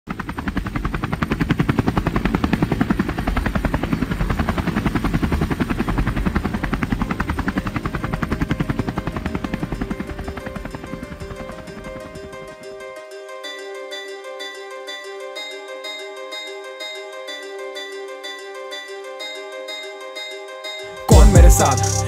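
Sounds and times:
helicopter rotor chopping: 0.1 - 12.7.

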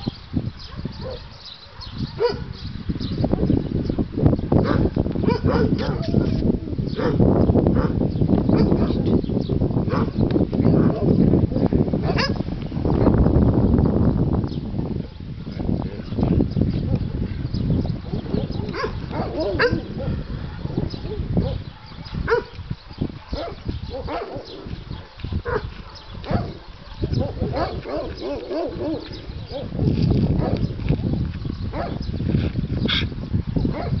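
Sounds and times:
dog yipping: 18.6 - 22.5.

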